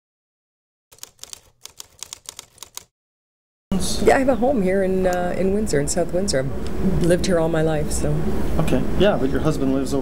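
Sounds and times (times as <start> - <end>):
typewriter keys clacking: 0.9 - 2.9
woman speaking: 3.7 - 8.3.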